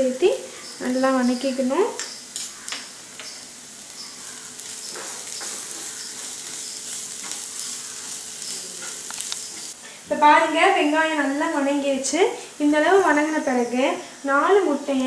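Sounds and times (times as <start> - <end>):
onions sizzling in oil: 0.0 - 15.0
spatula scraping and tapping pan: 4.0 - 9.8.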